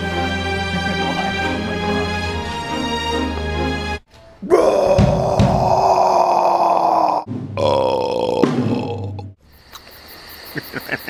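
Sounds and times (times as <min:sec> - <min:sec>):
man belching loudly: 0:04.4 - 0:09.4.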